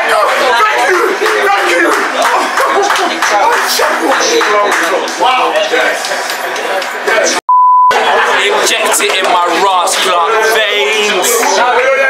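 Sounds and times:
group shouting and chatter: 0.0 - 12.0
high-pitched censor bleep: 7.5 - 8.0.

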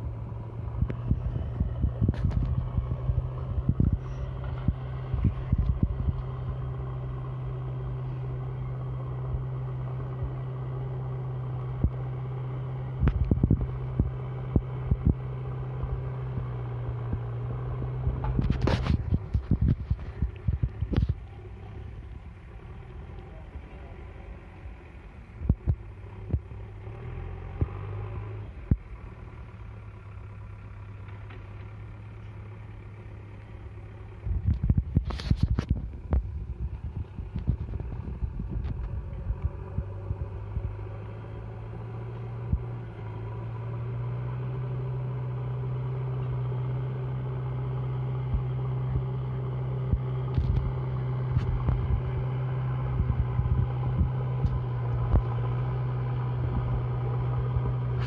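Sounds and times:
distant diesel engine rumble: 0.0 - 58.0.

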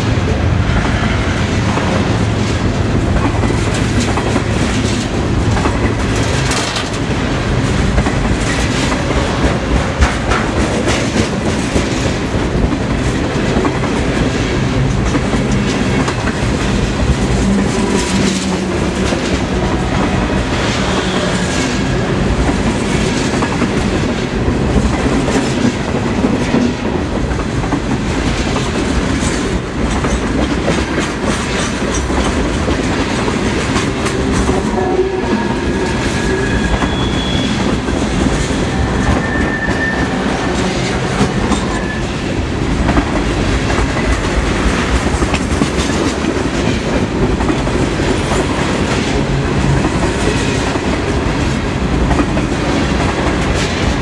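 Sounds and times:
train rolling past: 0.0 - 54.0
wheels clacking over rail joints: 0.3 - 54.0
high wheel squeals: 35.4 - 37.7, 38.6 - 40.4.

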